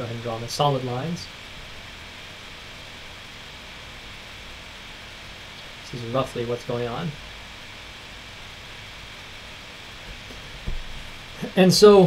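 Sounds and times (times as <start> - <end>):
microphone hiss: 0.0 - 12.0.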